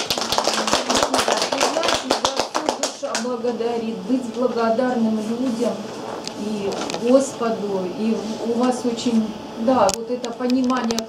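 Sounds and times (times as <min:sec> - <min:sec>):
small group applauding: 0:00.0 - 0:03.3.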